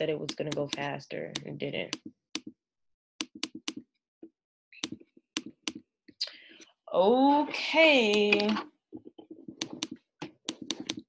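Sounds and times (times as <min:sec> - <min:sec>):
typing on computer keyboard: 0:03.2 - 0:03.9, 0:09.5 - 0:11.0.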